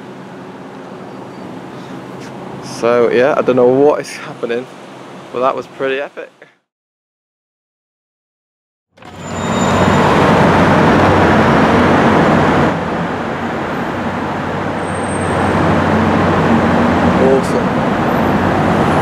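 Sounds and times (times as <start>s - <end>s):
car engine and road noise: 0.0s - 3.6s, 9.0s - 19.0s.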